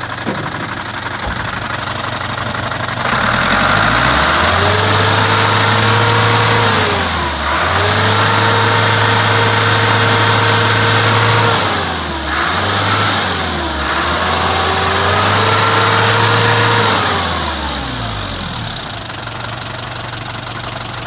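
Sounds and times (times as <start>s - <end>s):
diesel truck engine revving and idling: 0.0s - 21.0s.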